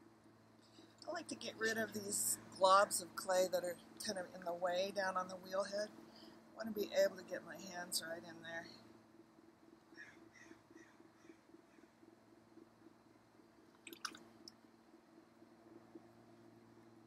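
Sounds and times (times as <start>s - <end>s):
potter's wheel humming: 0.7s - 9.8s.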